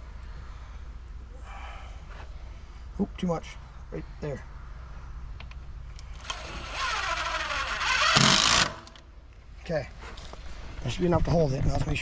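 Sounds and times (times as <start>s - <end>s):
cordless drill motor whining: 6.1s - 9.0s.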